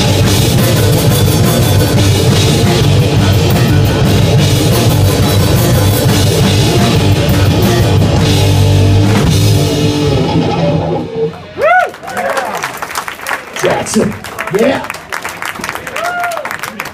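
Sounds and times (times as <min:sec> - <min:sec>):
live rock band: 0:00.0 - 0:13.2
audience whooping and shouting: 0:10.2 - 0:12.8, 0:15.7 - 0:16.9.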